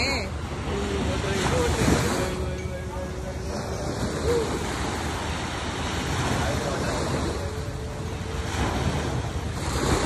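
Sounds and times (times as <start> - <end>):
small waves washing up shore: 0.0 - 10.0
wind rumbling on microphone: 0.0 - 10.0.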